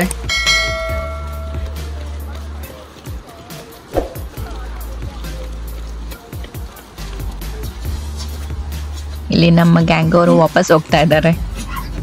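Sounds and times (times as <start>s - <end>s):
bright bell chime: 0.3s - 1.7s.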